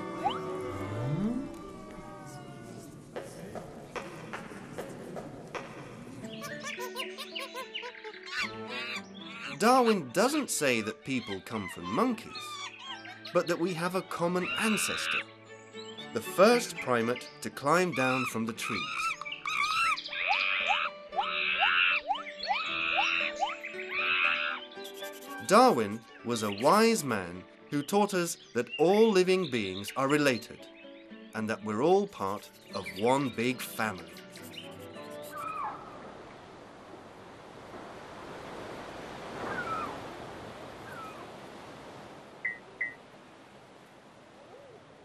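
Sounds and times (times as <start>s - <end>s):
light background music: 0.0s - 36.0s
cartoon chimpanzee calls: 6.4s - 10.1s, 11.3s - 13.8s, 14.4s - 15.2s, 17.9s - 25.5s, 35.3s - 35.8s
soft rushing wash: 35.8s - 45.0s.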